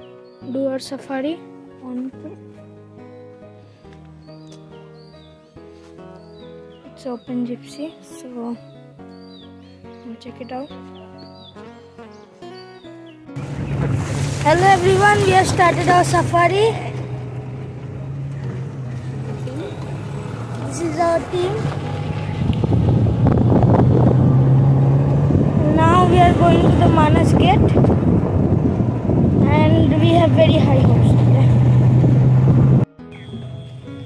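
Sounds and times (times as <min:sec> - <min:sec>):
road and wind noise: 0:00.0 - 0:12.4, 0:13.1 - 0:34.0
jeep engine low hum: 0:13.4 - 0:34.0.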